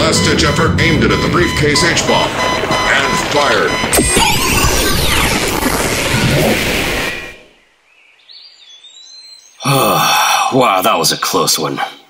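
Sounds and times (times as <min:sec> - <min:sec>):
incinerator blast sound effect: 0:00.0 - 0:07.6.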